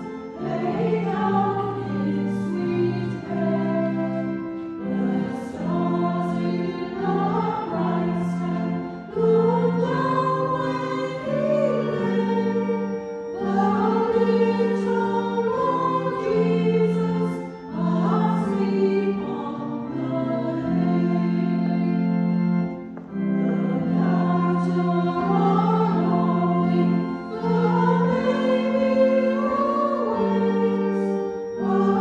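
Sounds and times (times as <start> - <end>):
choir singing a hymn: 0.0 - 32.0
sustained organ chords: 0.0 - 32.0.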